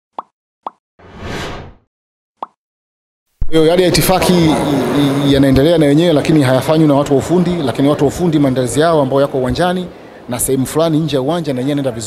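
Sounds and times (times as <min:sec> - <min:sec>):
whoosh: 0:01.0 - 0:01.9.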